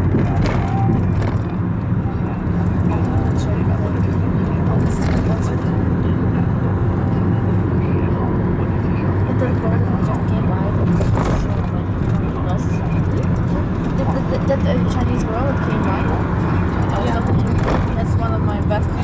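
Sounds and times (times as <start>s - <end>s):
car engine and road rumble: 0.0s - 19.0s
voices talking: 0.0s - 19.0s.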